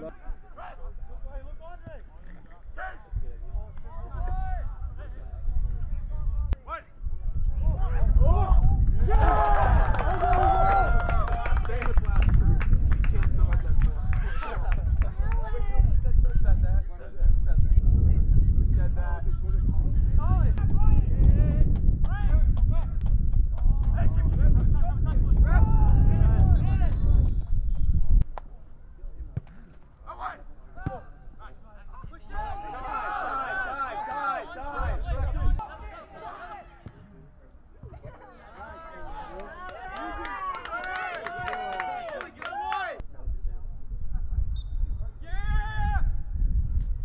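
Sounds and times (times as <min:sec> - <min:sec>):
wind buffeting microphone: 0:00.8 - 0:28.4, 0:34.7 - 0:35.6, 0:43.0 - 0:47.0
voices calling out and shouting: 0:30.0 - 0:43.0
people shouting: 0:32.3 - 0:34.8.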